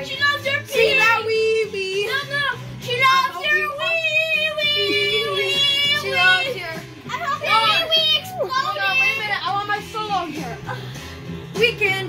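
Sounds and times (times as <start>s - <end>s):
boys vocalizing excitedly: 0.0s - 10.9s.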